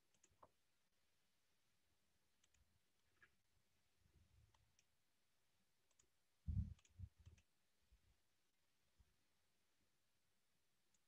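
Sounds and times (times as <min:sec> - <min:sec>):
computer mouse clicks: 0:00.0 - 0:00.6, 0:02.4 - 0:03.4, 0:04.5 - 0:04.9, 0:05.8 - 0:07.5.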